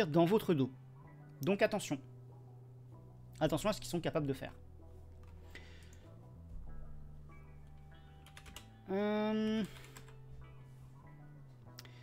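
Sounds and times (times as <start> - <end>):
computer keyboard keystrokes: 8.2 - 8.7, 9.6 - 10.2.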